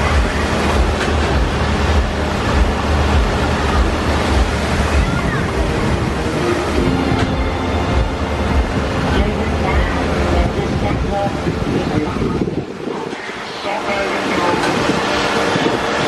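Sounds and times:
faint voices: 0:00.0 - 0:16.0
wind buffeting microphone: 0:00.0 - 0:16.0.

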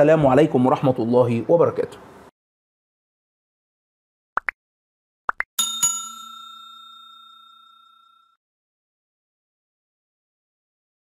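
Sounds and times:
notification bell ding: 0:05.6 - 0:08.4.

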